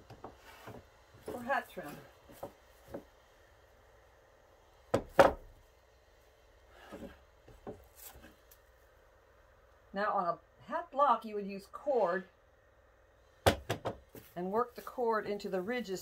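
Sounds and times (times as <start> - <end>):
felt rubbing: 6.7 - 8.5
wooden block knocking on table: 13.5 - 14.0.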